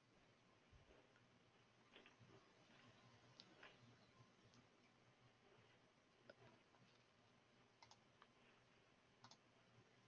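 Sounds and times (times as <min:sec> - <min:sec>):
faint computer mouse clicks: 0:07.8 - 0:08.3, 0:09.2 - 0:09.5.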